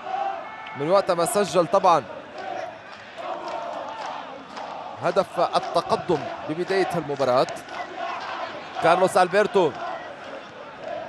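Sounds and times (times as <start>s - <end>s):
sparse crowd: 0.0s - 11.0s.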